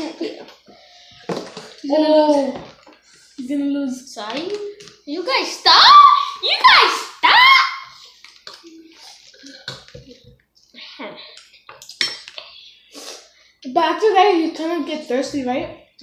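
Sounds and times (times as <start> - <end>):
boys talking: 0.0 - 0.6, 1.7 - 2.8, 3.4 - 7.9, 13.6 - 16.0.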